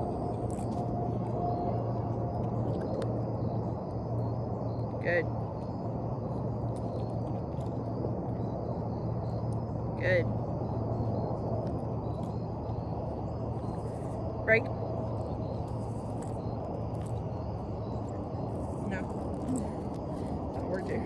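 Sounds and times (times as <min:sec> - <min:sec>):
faint steady hum: 0:00.0 - 0:21.0
low outdoor rumble: 0:00.0 - 0:21.0.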